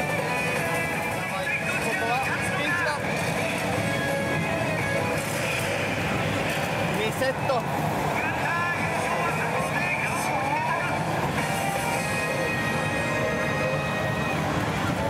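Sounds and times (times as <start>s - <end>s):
pachinko parlor din: 0.0s - 15.0s
slot machine music and effects: 0.0s - 15.0s.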